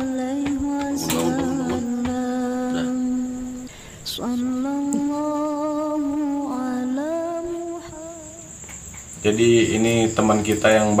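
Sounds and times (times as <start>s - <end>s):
person humming held notes: 0.0s - 8.6s.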